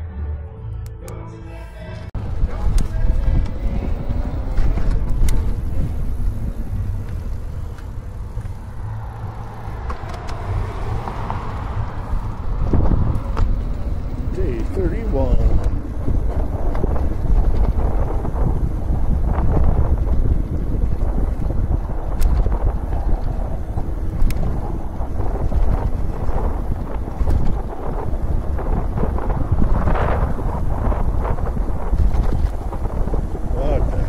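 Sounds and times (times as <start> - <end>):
wind buffeting microphone: 2.2 - 34.0.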